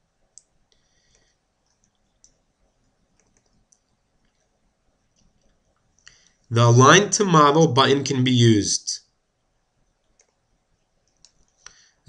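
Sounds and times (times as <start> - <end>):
faint computer mouse clicks: 0.3 - 2.4, 3.1 - 4.4, 10.0 - 10.4, 11.0 - 11.8.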